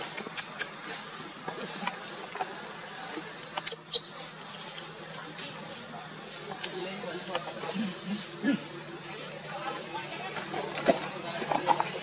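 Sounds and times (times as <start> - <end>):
baby monkey squeak: 3.9 - 4.4.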